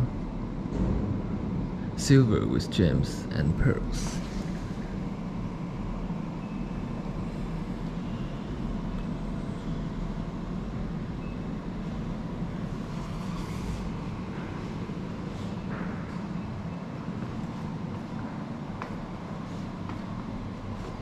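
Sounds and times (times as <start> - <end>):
low indoor room rumble: 0.0 - 21.0.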